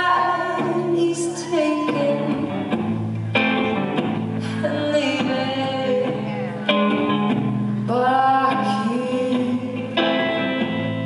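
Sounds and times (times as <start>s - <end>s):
woman singing: 0.0s - 2.7s, 4.4s - 6.8s, 7.8s - 10.4s
electric guitar: 0.0s - 11.0s.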